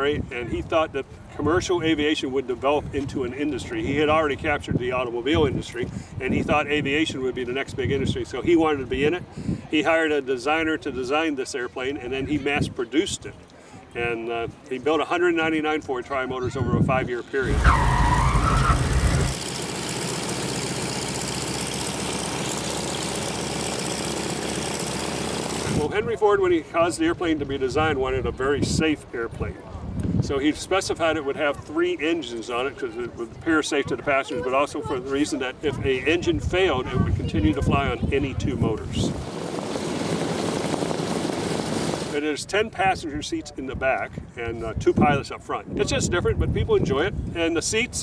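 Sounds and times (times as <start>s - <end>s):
aircraft engine running: 18.8s - 25.8s, 39.1s - 42.2s.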